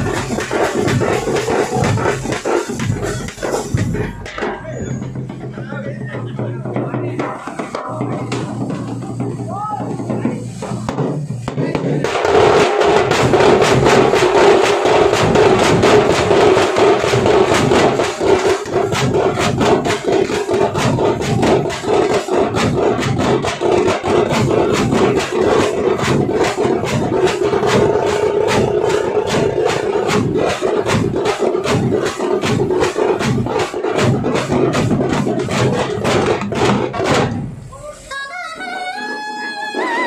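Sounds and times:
frame drums and bass drums: 0.0s - 38.0s.

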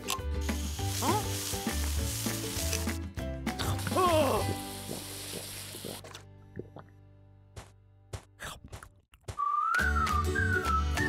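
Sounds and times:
cartoon water jet hissing: 0.4s - 3.0s, 3.7s - 6.0s.

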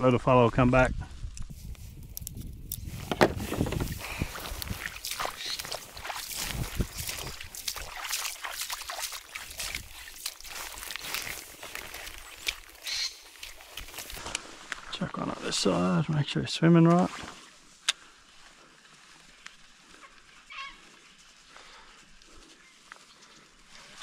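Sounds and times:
fishing tackle clicks and rustling: 1.4s - 14.5s.

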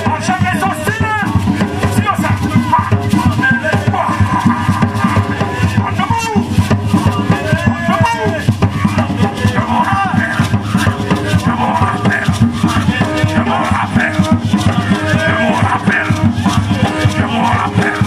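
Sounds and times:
hand drums in driving rhythm: 0.0s - 18.0s
shaker rattling: 0.0s - 18.0s
voices singing: 0.0s - 18.0s.

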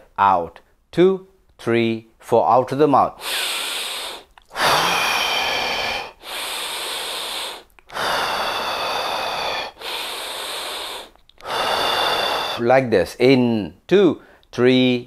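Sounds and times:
man breathing deeply: 3.2s - 12.7s.

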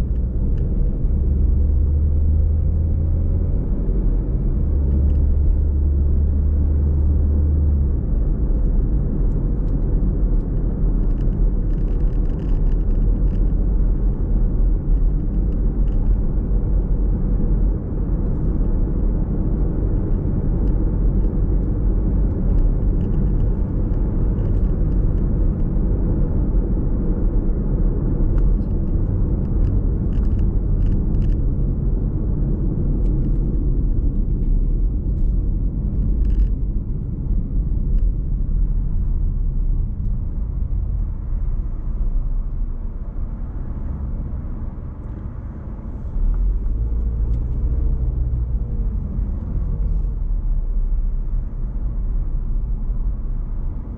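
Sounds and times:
car engine and tyre rumble: 0.0s - 53.9s.

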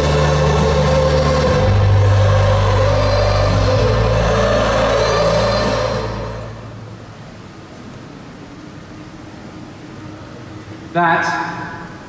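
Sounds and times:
live concert music: 0.0s - 6.8s
deep bass notes: 0.0s - 6.9s.

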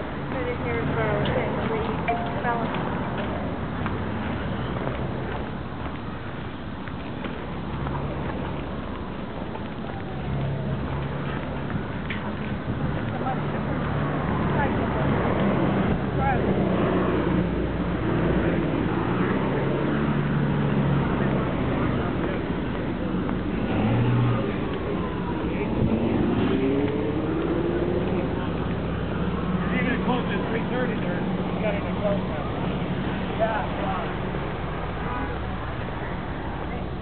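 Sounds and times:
cars passing: 0.0s - 37.0s.

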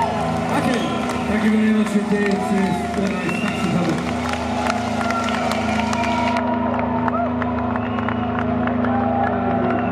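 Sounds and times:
crowd cheering and clapping: 0.0s - 9.9s.

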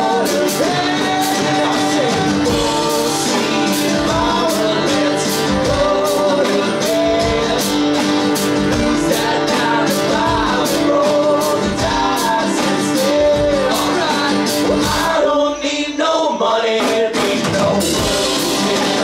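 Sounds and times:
strummed acoustic guitars: 0.0s - 16.0s, 16.7s - 19.0s
drum kit with cymbal hits: 0.0s - 19.0s
men singing: 0.0s - 19.0s.

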